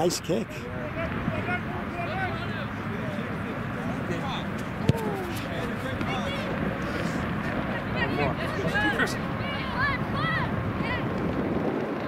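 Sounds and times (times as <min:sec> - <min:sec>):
voices calling out: 0:00.0 - 0:11.1
outdoor background noise: 0:00.0 - 0:12.0.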